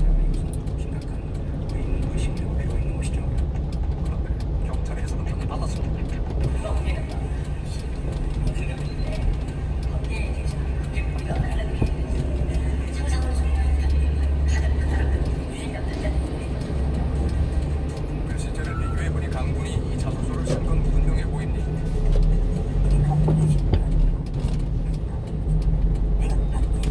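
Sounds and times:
radio music: 0.0s - 25.6s
truck engine and road drone: 0.0s - 26.9s.

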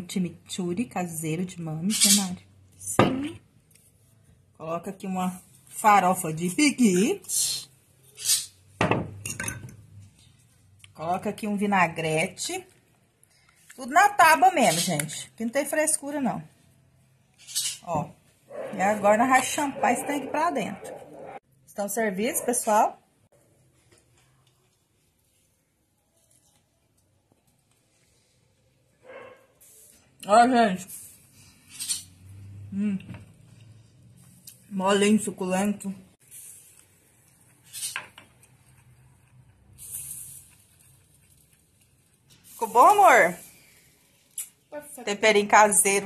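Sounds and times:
dishes and utensils clinking: 8.8s - 9.8s
faint hiss: 39.8s - 40.7s.

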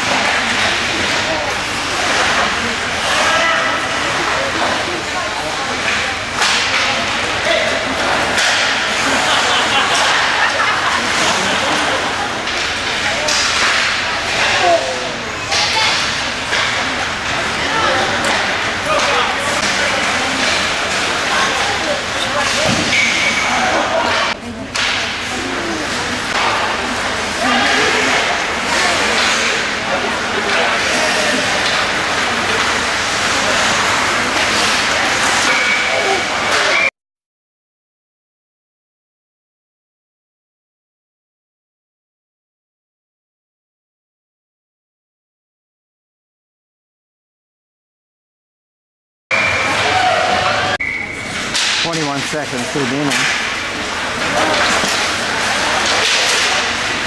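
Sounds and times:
voices of players and spectators: 0.0s - 36.9s, 49.3s - 57.0s
sticks and puck clacking: 0.1s - 4.8s, 5.8s - 7.0s, 7.9s - 9.2s, 11.0s - 14.8s, 15.5s - 25.7s, 26.3s - 36.9s, 51.3s - 57.0s.

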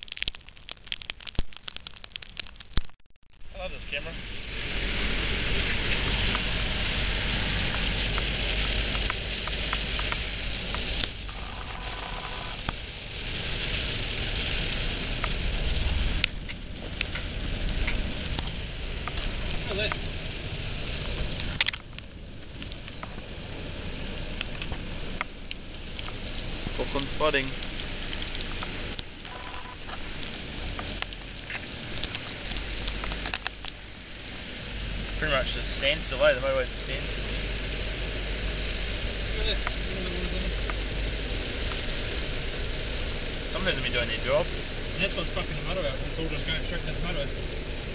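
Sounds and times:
heavy rain on car roof: 0.0s - 47.9s
low rumble of moving car: 3.3s - 47.9s.

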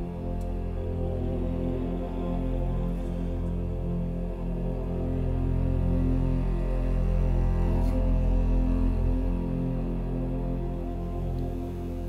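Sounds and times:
ensemble holding long chords: 0.0s - 12.0s
low bowed strings drone: 0.0s - 12.0s.

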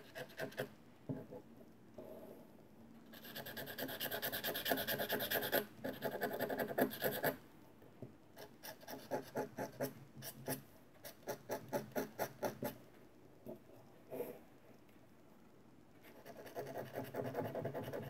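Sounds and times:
pointed tool scratching paper: 3.1s - 7.4s, 16.1s - 18.0s.

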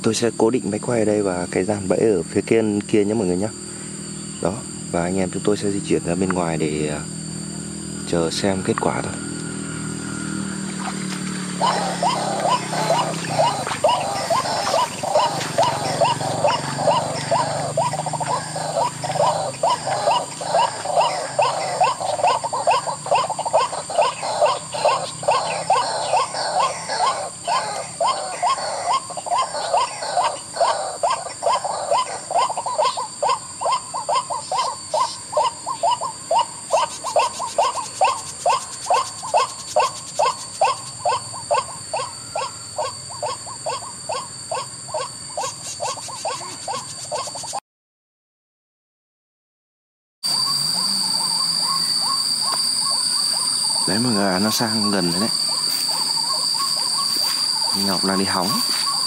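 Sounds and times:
steady high-pitched tone: 4.2s - 46.7s, 50.2s - 59.0s
bird calls from speaker: 10.6s - 47.6s, 50.3s - 59.0s.

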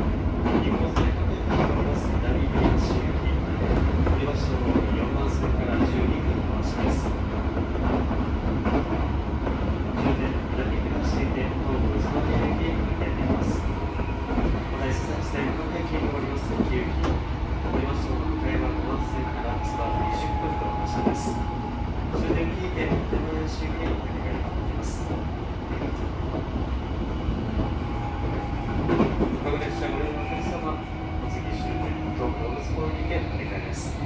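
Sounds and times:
train wheels rumbling on track: 0.0s - 34.0s.

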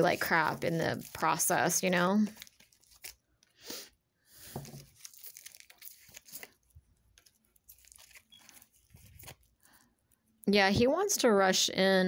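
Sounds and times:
woman speaking: 0.0s - 2.4s, 10.5s - 12.0s.

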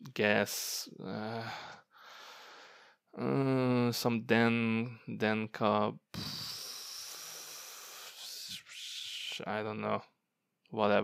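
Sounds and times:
man hissing through teeth: 6.1s - 9.4s.

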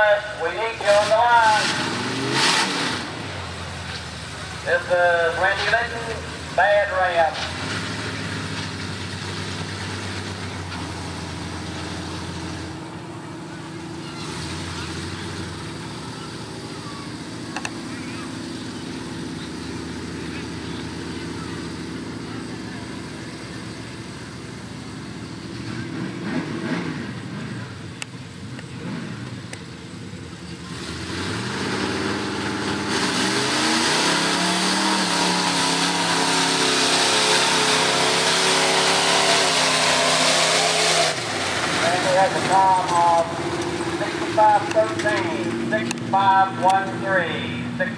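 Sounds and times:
truck engine revving: 0.0s - 47.9s.

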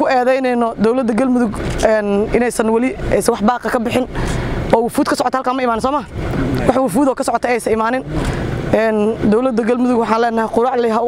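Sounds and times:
woman talking: 0.0s - 11.0s.

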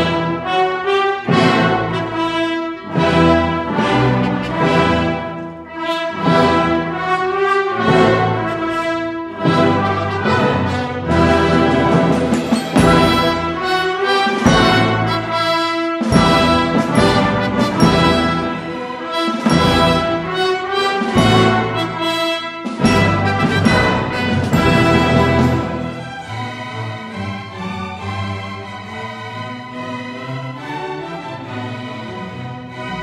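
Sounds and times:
brass playing: 0.0s - 28.2s
orchestra and wind bands playing: 0.0s - 33.0s.

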